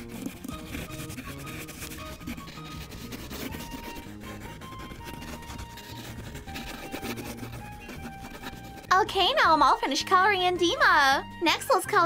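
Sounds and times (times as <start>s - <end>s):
crayon scribbling on paper: 0.0s - 10.1s.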